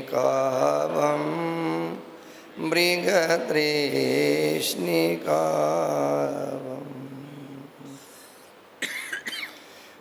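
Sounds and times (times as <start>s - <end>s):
person coughing: 8.8s - 9.7s.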